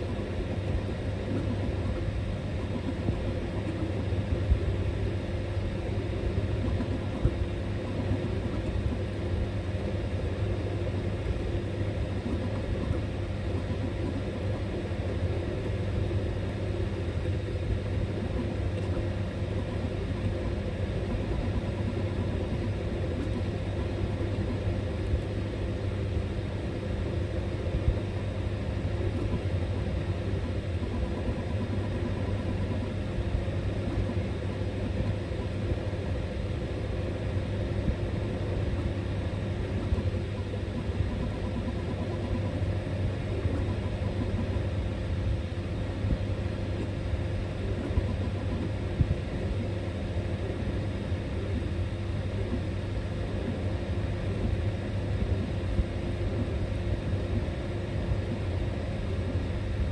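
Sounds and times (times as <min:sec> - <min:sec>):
three-d printer motors and fans: 0:00.0 - 0:59.9.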